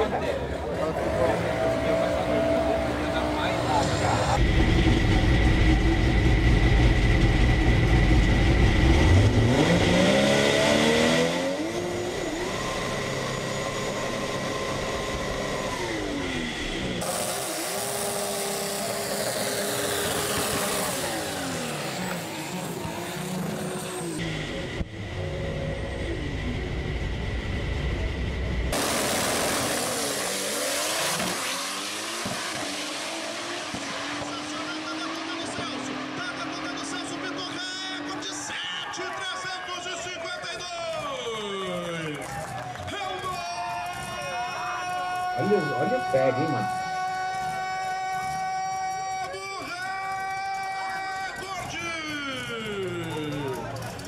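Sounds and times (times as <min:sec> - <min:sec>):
car engine revving: 0:00.6 - 0:38.6.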